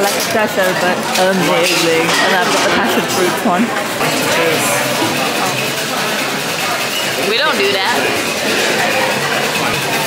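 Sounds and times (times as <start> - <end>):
chatter of many diners: 0.0 - 10.0.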